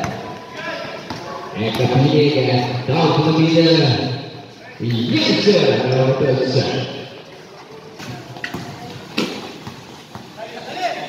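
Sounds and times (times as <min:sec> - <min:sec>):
basketball bouncing: 0:01.0 - 0:02.1, 0:08.0 - 0:10.4.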